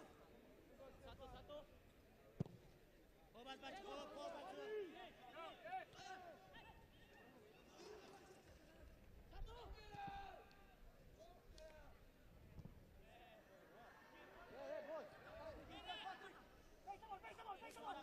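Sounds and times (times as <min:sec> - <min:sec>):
quiet stadium background: 0:00.0 - 0:18.0.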